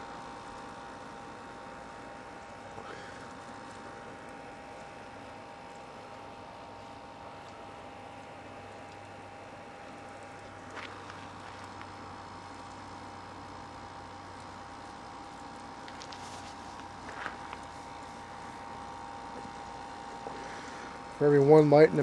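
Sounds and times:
steady hum: 0.0 - 22.0.

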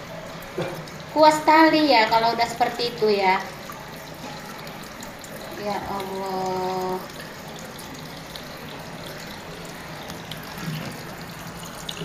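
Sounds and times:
water running from tap: 0.0 - 12.0.

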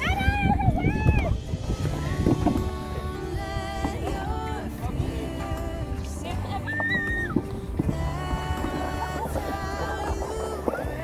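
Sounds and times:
song with gliding melody: 0.0 - 11.0.

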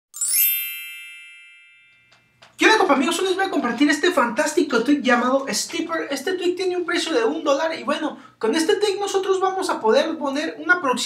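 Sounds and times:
bell-like electronic chime: 0.2 - 2.4.

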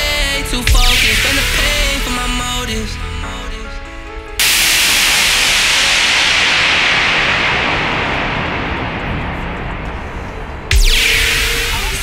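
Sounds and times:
hip-hop music: 0.0 - 8.6, 10.7 - 12.0
white-noise sweep hiss: 4.4 - 12.0.

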